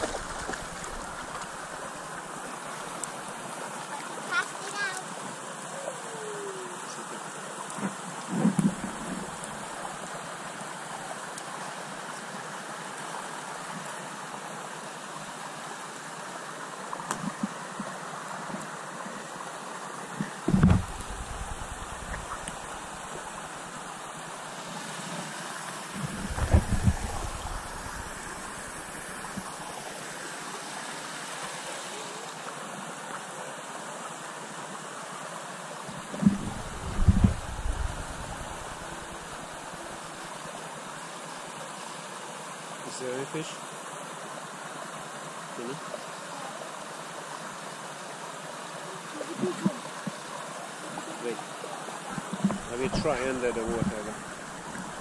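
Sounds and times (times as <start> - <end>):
river water flowing over rocks: 0.0 - 55.0.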